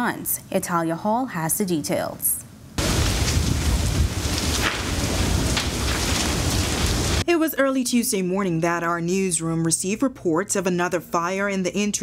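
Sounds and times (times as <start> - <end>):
flames rushing: 2.8 - 7.2
heavy low rumble: 2.8 - 7.2
fire crackles and pops: 2.8 - 7.3.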